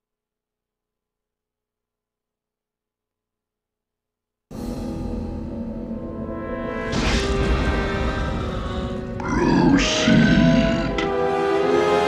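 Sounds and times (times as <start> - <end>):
dramatic orchestral trailer music: 4.5 - 12.0
deep growling roar: 8.0 - 11.1.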